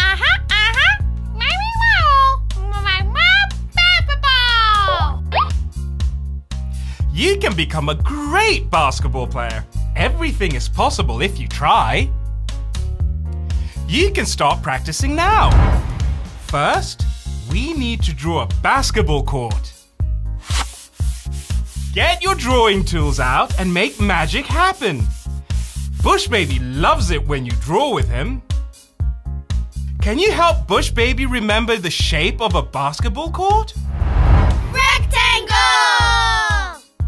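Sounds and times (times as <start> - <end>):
background music with bass line: 0.0 - 7.7, 33.7 - 37.0
upbeat cartoon music: 0.0 - 19.8, 20.4 - 31.5, 33.8 - 37.0
cartoon rubbing and swishing: 15.1 - 17.2, 20.4 - 22.0, 33.8 - 35.7
high cartoon voice sliding down: 34.6 - 35.9.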